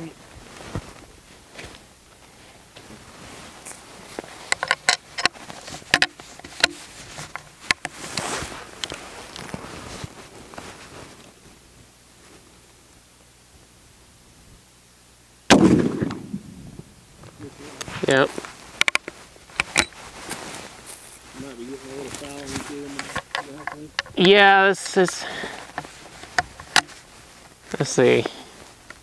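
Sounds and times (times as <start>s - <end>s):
rifle shot: 15.5s - 16.8s.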